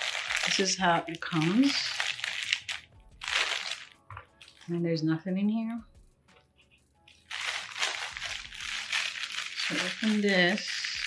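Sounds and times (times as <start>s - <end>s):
plastic bag crinkling: 0.0s - 4.8s, 7.2s - 11.0s.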